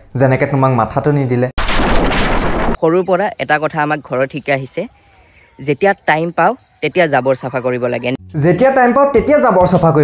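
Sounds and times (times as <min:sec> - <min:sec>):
explosion blast: 0:01.6 - 0:02.8.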